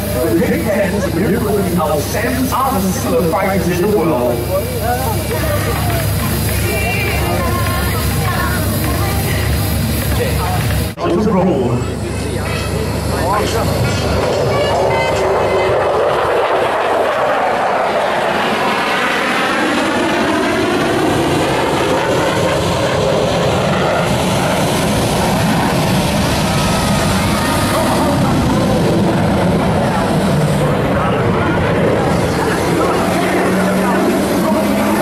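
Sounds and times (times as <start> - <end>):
jet engine roar: 0.0 - 35.0
turbine whine: 0.0 - 35.0.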